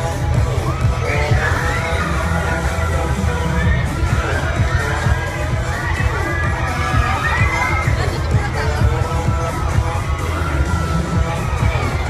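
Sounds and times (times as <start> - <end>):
crowd screaming: 0.0 - 12.0
loud bass-heavy music: 0.0 - 12.0.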